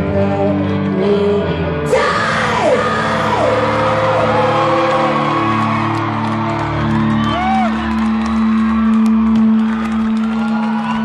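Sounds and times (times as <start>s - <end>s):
woman yelling vocals: 1.9s - 4.7s.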